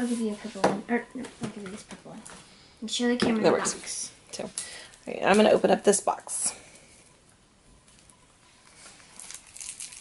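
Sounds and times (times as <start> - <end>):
paper rustling and crinkling: 7.9 - 10.0.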